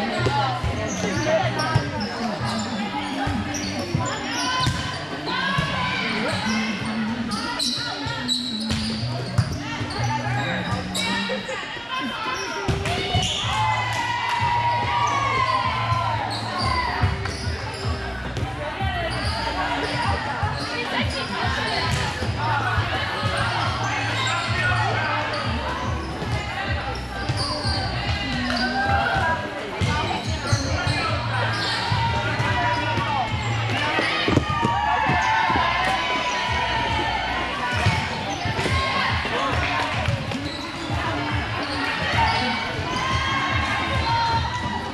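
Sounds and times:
voices chattering and calling out: 0.0 - 44.9
volleyballs hit and bouncing: 12.7 - 16.0, 27.2 - 44.9.

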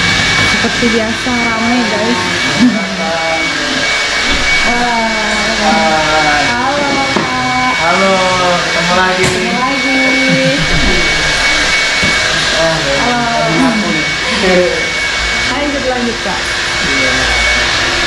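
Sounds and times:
hair dryer blowing: 0.0 - 18.0
person talking: 4.7 - 11.2, 12.5 - 14.9.

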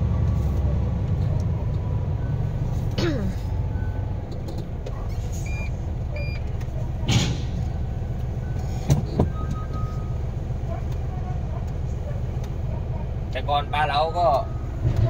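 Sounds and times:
diesel truck engine idling: 0.0 - 15.0.

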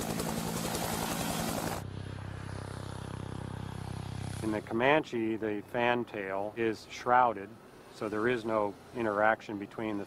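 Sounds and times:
helicopter rotor chopping: 0.0 - 5.0
smooth helicopter whirr: 0.0 - 6.4.

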